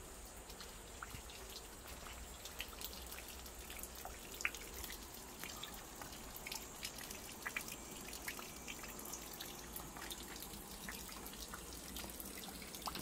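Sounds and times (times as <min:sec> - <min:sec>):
faint steady hiss: 0:00.0 - 0:13.0
raindrops on wet ground and leaves: 0:00.0 - 0:13.0.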